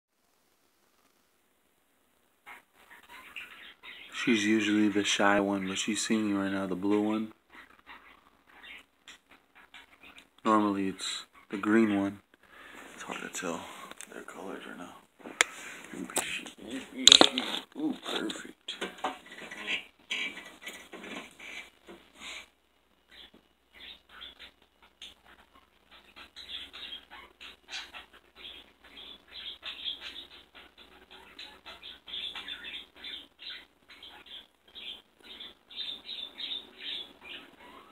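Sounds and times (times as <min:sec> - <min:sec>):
parakeets chirping: 0:02.4 - 0:14.7, 0:19.4 - 0:37.9.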